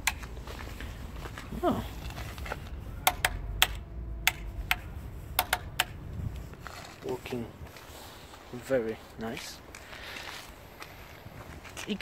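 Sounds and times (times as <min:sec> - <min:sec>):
lockout lever clicking: 0:03.0 - 0:06.0.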